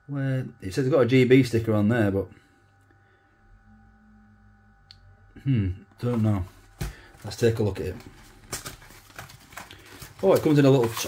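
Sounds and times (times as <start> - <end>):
cardboard box crackling: 6.0 - 11.0.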